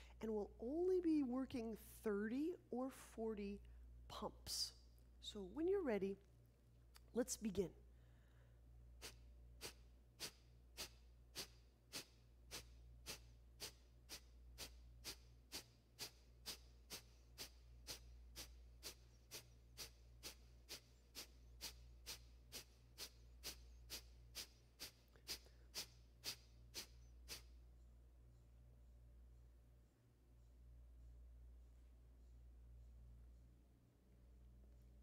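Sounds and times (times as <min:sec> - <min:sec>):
forceful nasal exhalations: 0:08.1 - 0:27.6.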